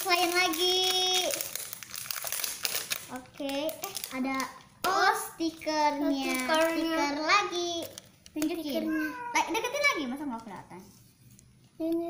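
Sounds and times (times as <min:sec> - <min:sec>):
plastic wrapping crinkling: 0:00.0 - 0:11.6.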